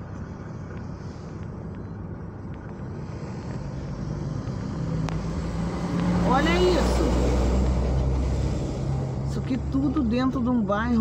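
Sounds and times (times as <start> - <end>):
car road and engine noise: 0.0 - 11.0
truck passing with low hum: 0.0 - 11.0.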